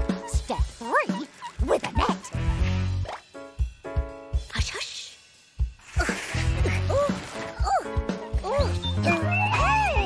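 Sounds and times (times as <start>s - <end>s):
children's music with steady beat: 0.0s - 6.6s, 7.6s - 10.0s
rising yelp-like calls: 8.4s - 10.0s.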